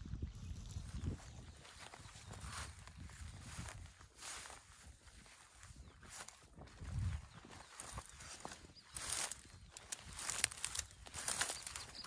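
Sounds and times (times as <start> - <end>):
footsteps through leafy plants: 0.3 - 12.0
leaves rustling: 7.7 - 12.0.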